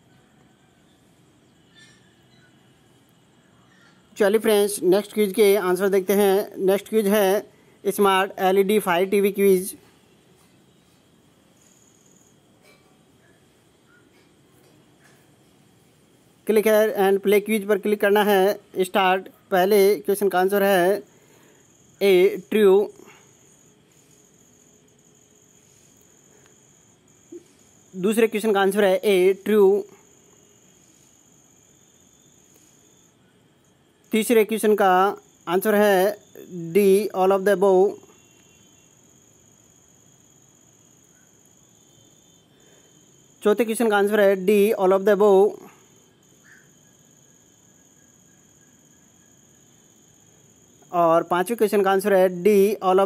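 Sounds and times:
faint high-pitched whine: 0:00.0 - 0:53.0
low hiss: 0:00.0 - 0:53.0
person speaking: 0:04.2 - 0:09.8, 0:16.5 - 0:21.1, 0:22.0 - 0:23.2, 0:27.4 - 0:30.0, 0:34.1 - 0:38.0, 0:43.4 - 0:45.7, 0:50.9 - 0:53.0.

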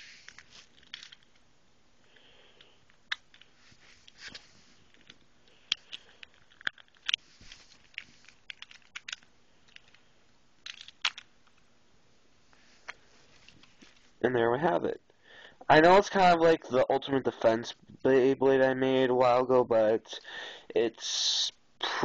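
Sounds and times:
plastic and metal parts clicking: 0:04.3 - 0:07.2, 0:07.8 - 0:10.0, 0:10.6 - 0:11.6.

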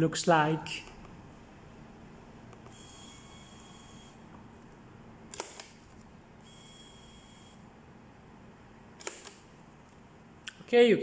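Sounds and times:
faint high motor whine: 0:00.8 - 0:08.3
sharp click: 0:05.3 - 0:05.8, 0:09.0 - 0:09.4.

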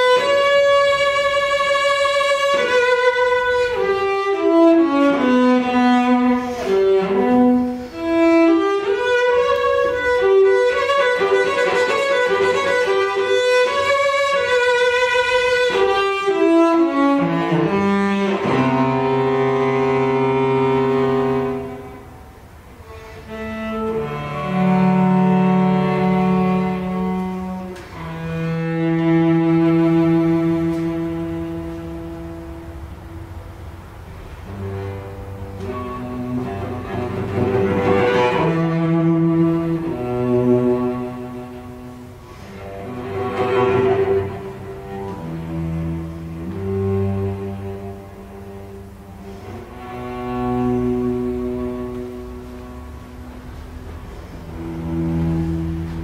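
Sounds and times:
cello slow bowed notes: 0:00.0 - 0:56.0.

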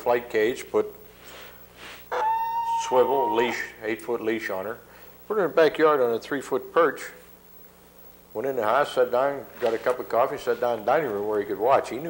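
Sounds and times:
steady pitched tone: 0:02.1 - 0:03.8
man talking: 0:02.8 - 0:07.2, 0:08.4 - 0:12.0.

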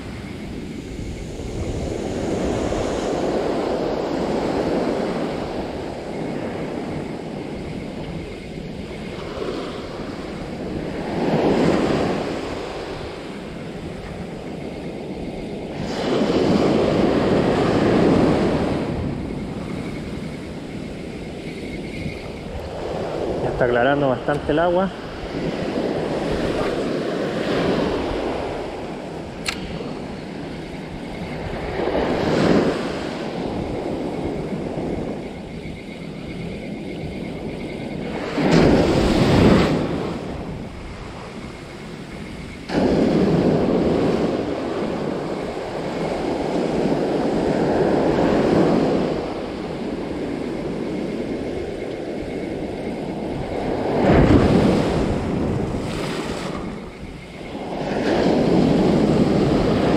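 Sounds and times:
wind on microphone: 0:00.0 - 0:59.9
surf breaking on sandy beach: 0:15.7 - 0:19.8, 0:22.8 - 0:30.4, 0:38.0 - 0:41.3, 0:42.6 - 0:50.8, 0:53.2 - 0:59.9.

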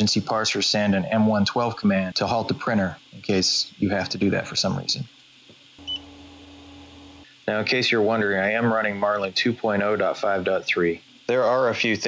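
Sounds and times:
faint steady low hum: 0:00.0 - 0:12.0.

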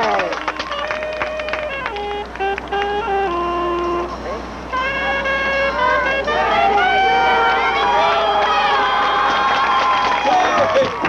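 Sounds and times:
marching band brass notes: 0:00.0 - 0:09.7.

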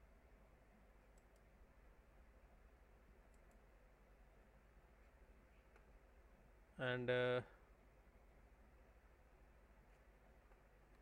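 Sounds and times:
low room hum: 0:00.0 - 0:11.0
computer mouse clicks: 0:01.1 - 0:01.5, 0:03.3 - 0:03.7.

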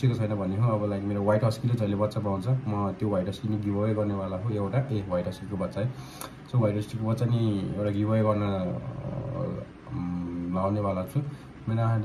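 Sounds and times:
person humming held vocal sounds: 0:08.7 - 0:10.5.

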